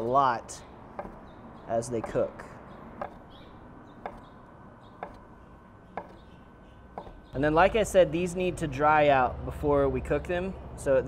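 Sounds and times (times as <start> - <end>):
knife knocking on wooden board: 1.0 - 1.2, 2.0 - 2.2, 3.0 - 3.2, 4.0 - 4.2, 5.0 - 5.2, 6.0 - 6.2, 7.0 - 7.2.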